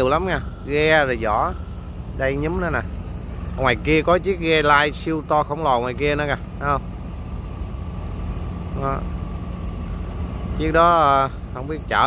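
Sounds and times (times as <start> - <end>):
boat diesel engine drone: 0.0 - 12.0
faint thin whine: 0.0 - 12.0.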